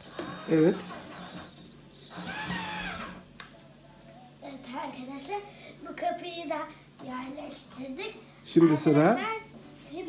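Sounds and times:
cordless drill driving screw: 2.1s - 3.2s.

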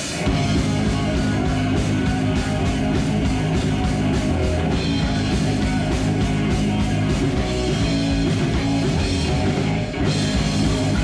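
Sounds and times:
heavy metal band playing: 0.0s - 11.0s
steady drum beat: 0.0s - 11.0s.

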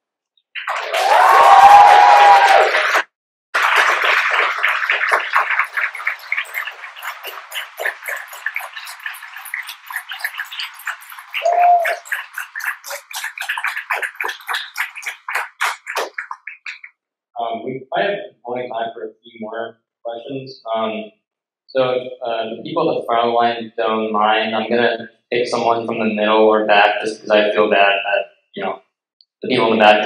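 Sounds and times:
audience clapping: 0.6s - 16.9s
audience cheering: 0.7s - 3.0s, 11.4s - 12.1s.

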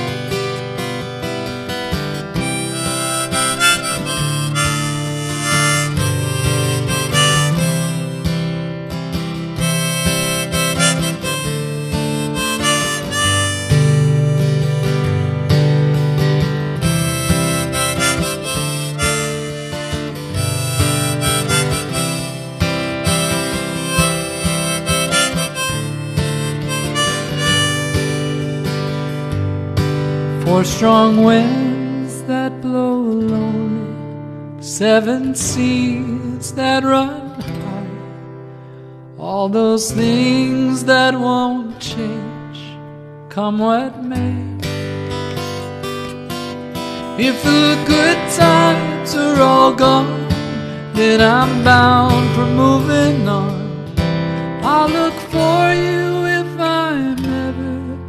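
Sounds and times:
harmonica melody: 0.0s - 30.0s, 45.1s - 52.9s
strummed acoustic guitar: 0.0s - 58.0s.

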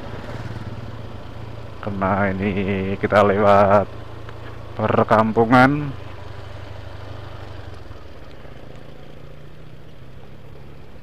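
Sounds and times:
motorcycle engine low hum: 0.0s - 11.0s.

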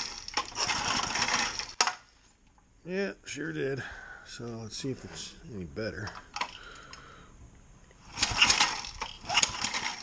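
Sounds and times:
engine cranking from recoil starter: 0.0s - 2.0s, 8.0s - 10.0s.

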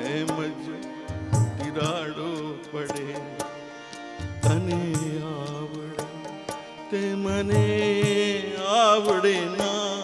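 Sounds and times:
harmonium melody: 0.0s - 10.0s
tabla and dholak drumming: 0.0s - 10.0s.

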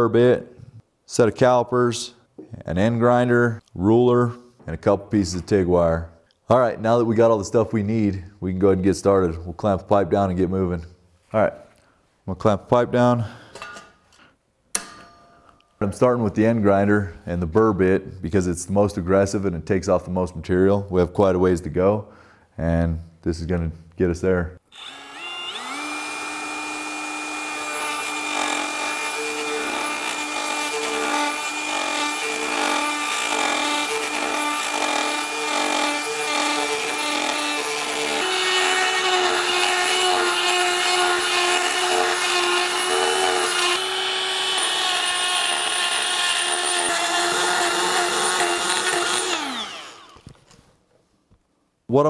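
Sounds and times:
die grinder grinding steel pipe: 24.8s - 50.3s.

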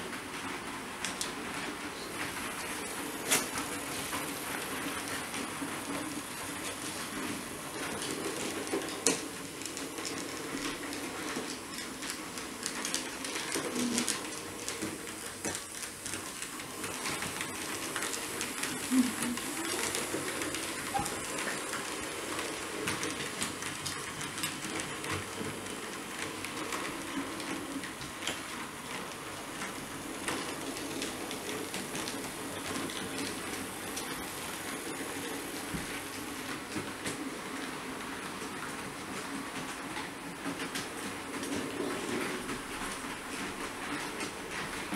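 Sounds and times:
faint motor hum: 0.1s - 44.9s
model train wheels clicking: 2.2s - 37.8s.

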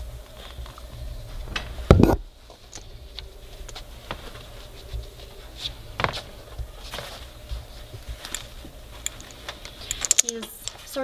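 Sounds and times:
puppy clicking and rustling in crate: 2.6s - 11.0s.

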